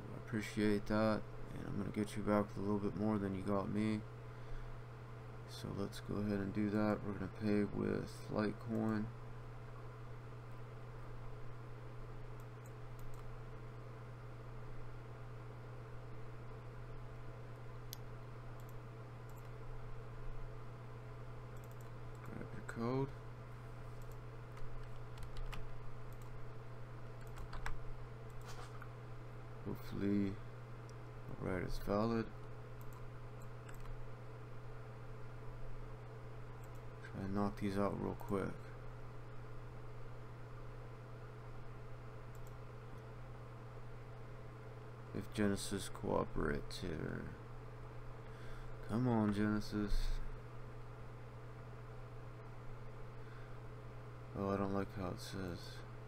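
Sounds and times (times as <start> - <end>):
steady low hum: 0.0 - 56.0
computer mouse clicks: 12.4 - 13.3, 17.9 - 19.6, 21.5 - 22.4, 24.0 - 26.4, 27.2 - 28.9, 32.8 - 34.0, 36.6 - 36.9, 42.3 - 43.1.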